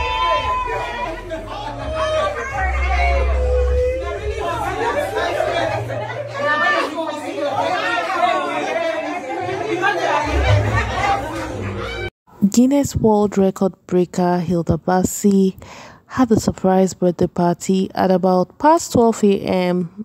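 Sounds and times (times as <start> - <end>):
women talking excitedly: 0.0 - 12.0.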